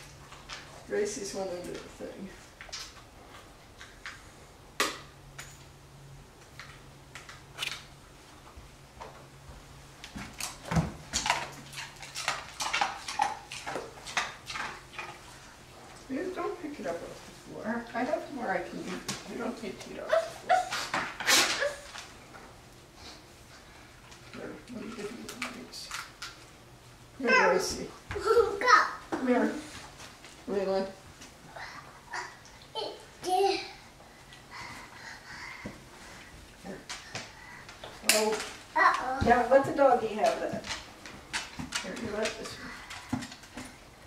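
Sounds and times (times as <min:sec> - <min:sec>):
dogs crunching ice cubes: 0:10.4 - 0:15.2.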